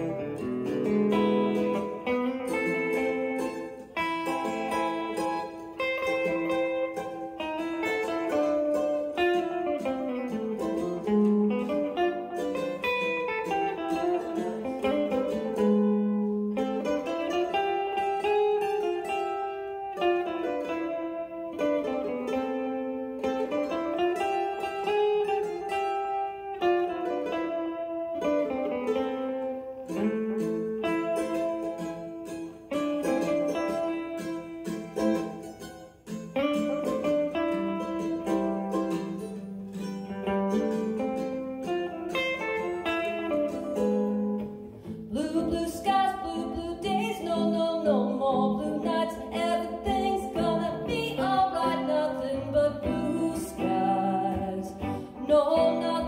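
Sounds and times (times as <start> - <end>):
guitar accompaniment: 0.0 - 56.0
mandolin plucked melody: 0.0 - 56.0.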